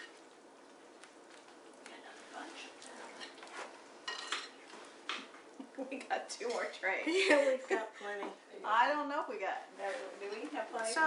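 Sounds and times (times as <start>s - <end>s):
spoon clinking on baking tray: 4.0s - 4.6s.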